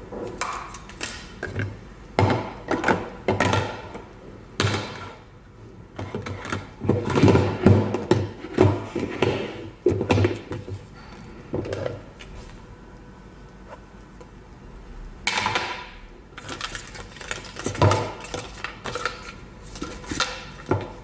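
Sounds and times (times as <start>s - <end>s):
plastic containers knocking and clattering: 0.1s - 4.0s, 6.0s - 10.8s, 15.3s - 19.2s, 19.8s - 21.0s.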